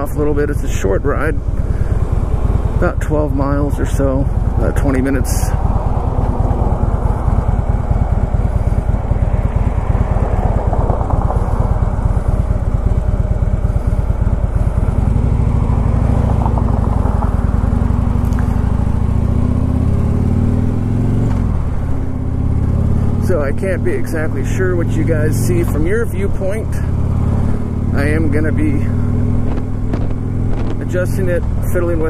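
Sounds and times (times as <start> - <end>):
motorcycle engine accelerating: 0.0 - 32.0.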